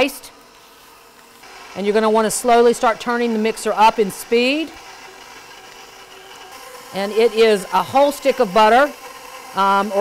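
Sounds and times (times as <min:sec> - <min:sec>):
stand mixer running: 0:00.0 - 0:10.0.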